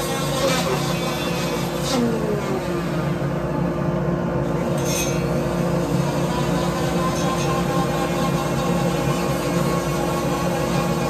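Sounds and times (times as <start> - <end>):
rotary grinder grinding metal: 0.0 - 3.2, 4.6 - 11.0.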